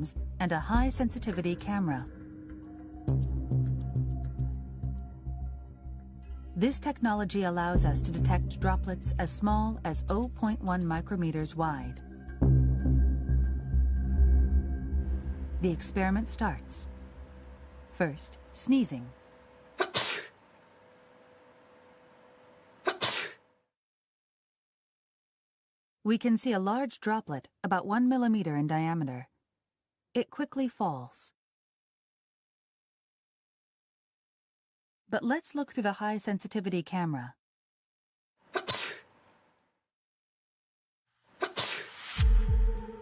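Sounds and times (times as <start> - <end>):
deep low boom: 12.4 - 17.9
man sneezing: 19.8 - 20.3, 22.8 - 23.4, 38.5 - 39.0, 41.4 - 41.9.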